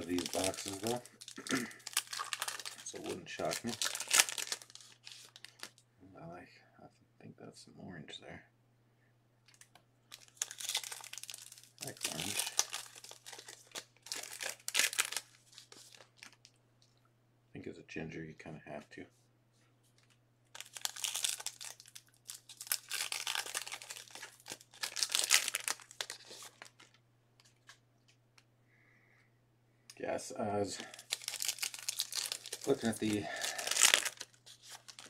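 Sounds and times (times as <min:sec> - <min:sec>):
wrapping crinkling: 0:00.0 - 0:05.8, 0:09.5 - 0:17.0, 0:19.8 - 0:28.2, 0:30.7 - 0:35.0
small clicks and rustles: 0:26.1 - 0:28.5.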